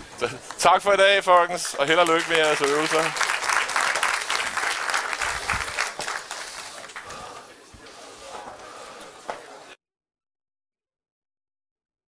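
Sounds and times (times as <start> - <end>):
audience applauding: 0.2 - 7.5.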